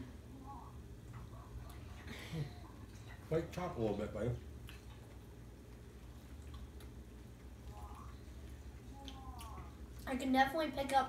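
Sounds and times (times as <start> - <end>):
low steady hum: 0.0 - 11.0
chewing and mouth clicks: 4.5 - 10.1.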